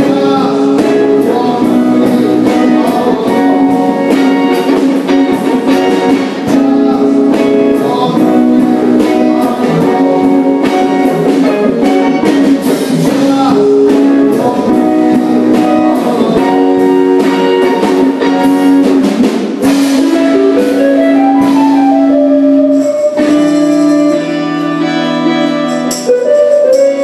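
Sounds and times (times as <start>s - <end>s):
bass: 0.0s - 27.0s
drum kit: 0.0s - 27.0s
electric guitar lines: 0.0s - 27.0s.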